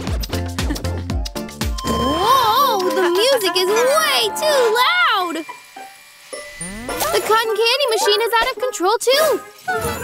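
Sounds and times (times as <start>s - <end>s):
rising pitched glide: 6.3s - 7.5s.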